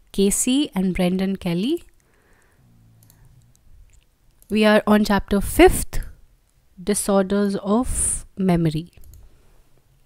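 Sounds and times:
computer mouse clicks: 1.9 - 4.6, 8.9 - 9.3
soft low hum: 2.0 - 4.5.

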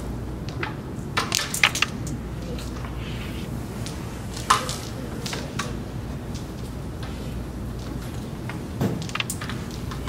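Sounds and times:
carrom pieces clicking together: 0.4 - 3.1, 3.8 - 10.0.

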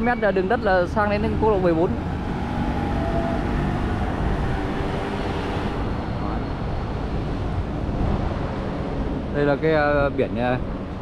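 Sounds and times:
low traffic rumble: 0.0 - 11.0
vehicle engines passing: 0.0 - 11.0.

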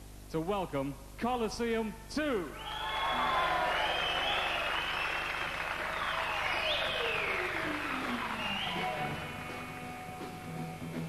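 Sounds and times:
audience applauding: 2.6 - 11.0
electric instrument long falling tones: 5.8 - 11.0.

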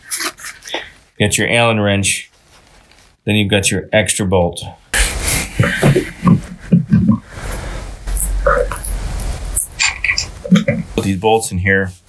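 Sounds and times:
man chuckling: 5.0 - 7.4.

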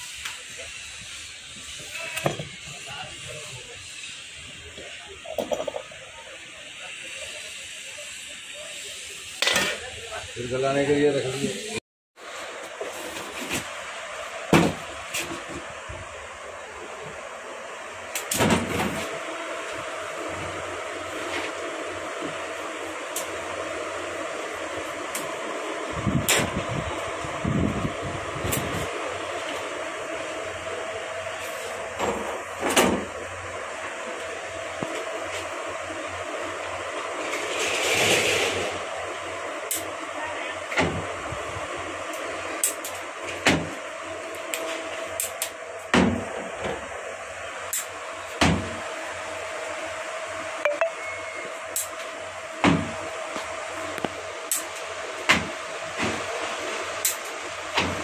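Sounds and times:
workshop hum: 0.0 - 58.0.

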